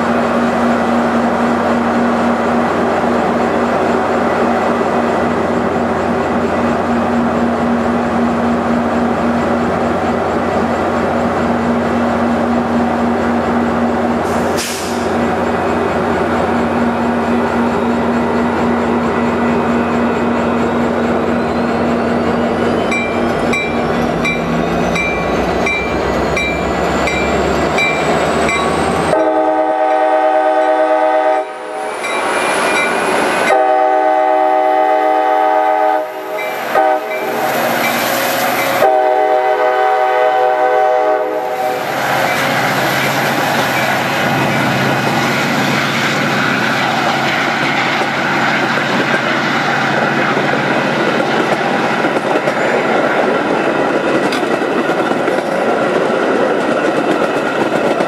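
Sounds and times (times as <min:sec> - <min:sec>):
train coaches rumbling on rails: 0:00.0 - 0:58.0
locomotive horn blasts: 0:29.1 - 0:31.8, 0:33.5 - 0:37.3, 0:38.8 - 0:41.7.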